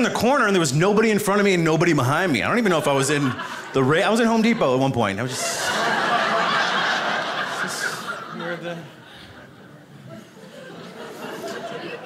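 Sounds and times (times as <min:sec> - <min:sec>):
studio audience laughing: 0:02.6 - 0:12.0.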